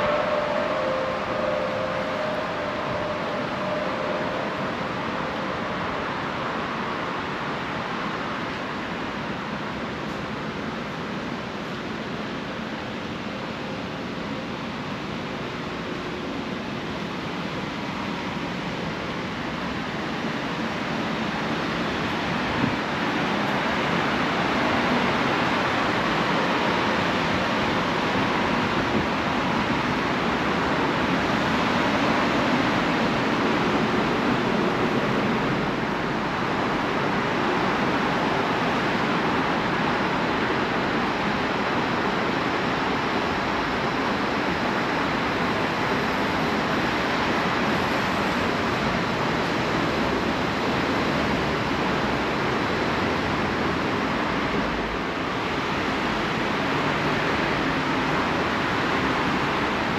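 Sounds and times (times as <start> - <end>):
steady rushing background noise: 0.0 - 59.9.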